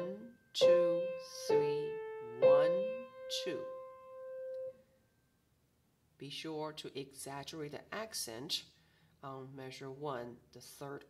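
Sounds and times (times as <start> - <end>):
piano note: 0.6 - 4.7.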